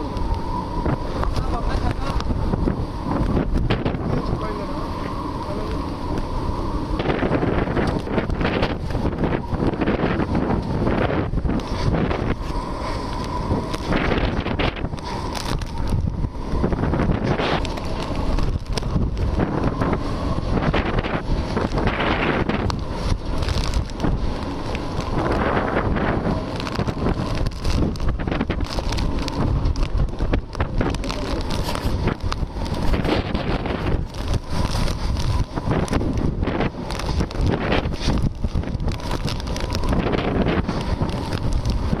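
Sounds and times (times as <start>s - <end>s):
strong wind gusting on microphone: 0.0s - 42.0s.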